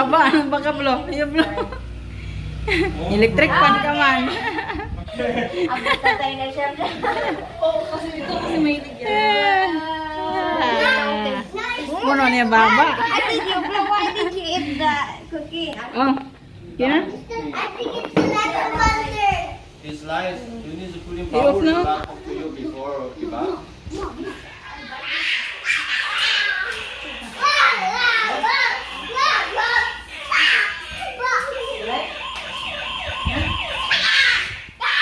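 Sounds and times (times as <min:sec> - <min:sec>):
young children chattering: 0:03.4 - 0:16.2, 0:17.1 - 0:19.8, 0:22.0 - 0:32.2
toy police car siren: 0:31.5 - 0:34.6.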